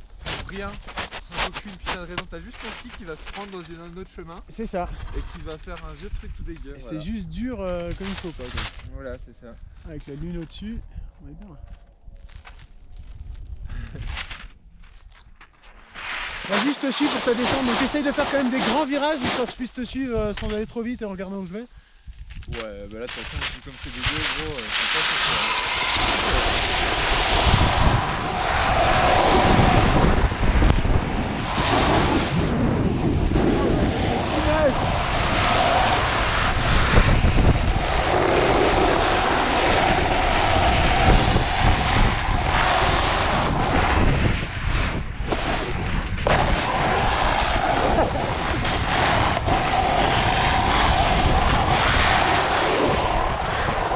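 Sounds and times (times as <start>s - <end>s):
skis scraping over snow: 0.1s - 8.9s, 15.7s - 21.7s, 22.3s - 53.9s
wind buffeting microphone: 16.4s - 53.9s.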